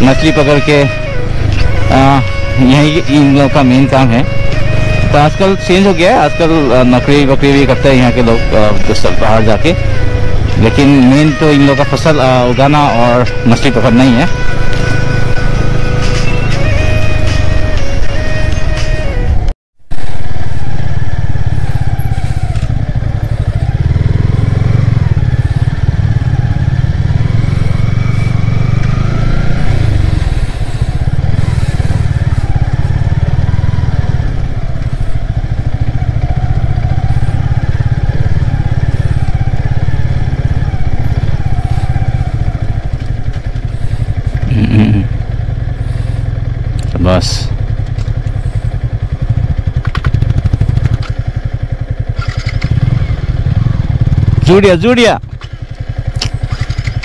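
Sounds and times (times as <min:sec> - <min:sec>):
motorcycle engine: 0:00.0 - 0:57.0.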